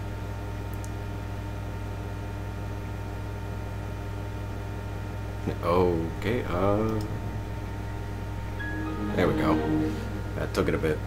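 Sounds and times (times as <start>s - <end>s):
low electrical hum: 0.0s - 11.0s
soft computer chime: 8.5s - 10.8s.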